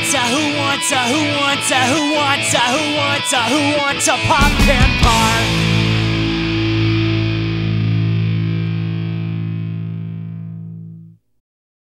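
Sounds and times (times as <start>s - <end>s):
distorted electric guitar chord ringing: 0.0s - 11.2s.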